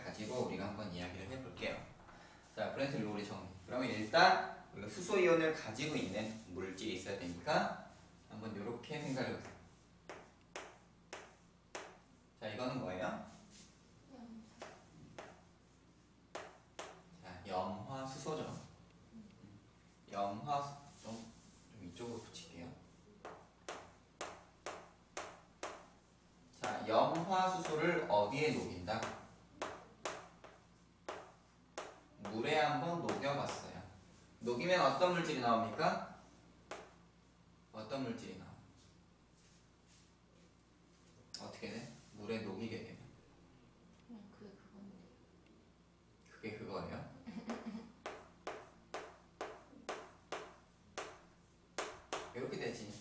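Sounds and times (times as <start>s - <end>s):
chalk writing on chalkboard: 9.1s - 12.1s, 14.5s - 17.1s, 20.8s - 33.7s, 35.7s - 37.0s, 47.5s - 53.0s.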